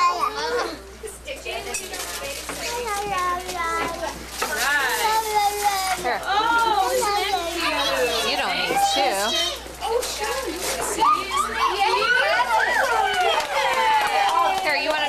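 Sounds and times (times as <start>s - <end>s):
children talking and exclaiming: 0.0s - 15.0s.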